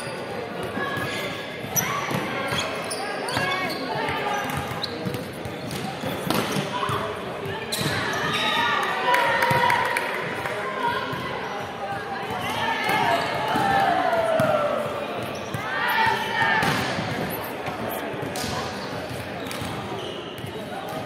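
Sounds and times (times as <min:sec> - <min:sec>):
players shouting in sports hall: 0:06.5 - 0:17.1.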